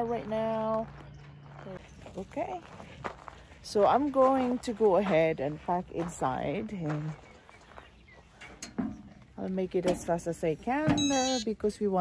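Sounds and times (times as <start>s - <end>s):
woman speaking: 0.0s - 0.9s, 1.6s - 2.7s, 3.6s - 7.2s, 9.4s - 12.0s
faint outdoor background noise: 0.0s - 12.0s.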